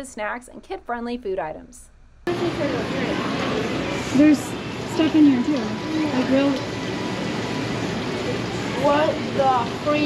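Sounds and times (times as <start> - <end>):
indoor hall hiss: 2.3 - 10.0.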